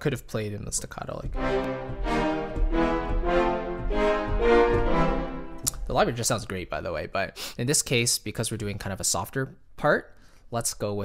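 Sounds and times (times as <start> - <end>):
orchestral staccato chords: 1.3 - 6.2.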